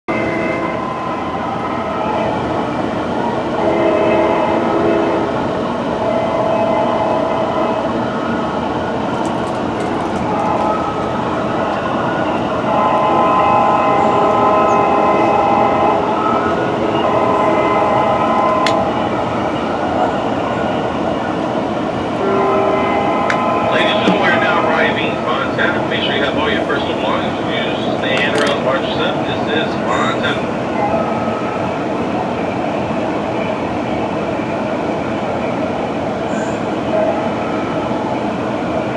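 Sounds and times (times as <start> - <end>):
train running rumble: 0.1 - 38.9
train air horn blasts: 12.6 - 16.1, 22.2 - 24.3.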